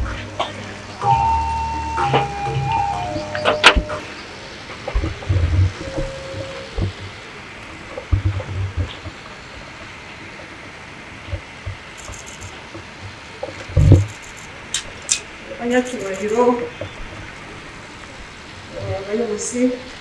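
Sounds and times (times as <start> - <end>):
faint hiss: 0.0 - 20.0
low thuds and rumbles: 4.9 - 7.2, 13.7 - 14.2.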